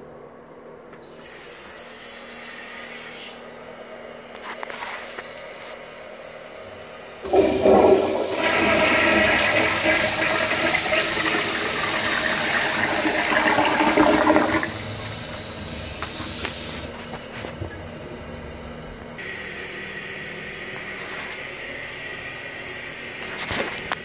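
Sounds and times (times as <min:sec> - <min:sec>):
toilet flushing: 0:07.2 - 0:19.3.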